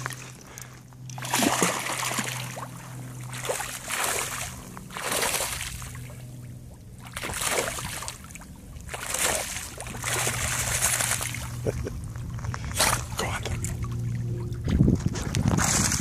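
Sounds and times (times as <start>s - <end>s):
steady low hum: 0.0s - 16.0s
dog splashing in water: 8.9s - 11.6s.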